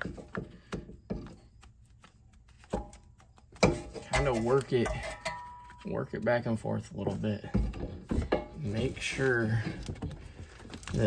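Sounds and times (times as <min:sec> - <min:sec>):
light clicks and knocks of metal parts: 0:00.0 - 0:06.4.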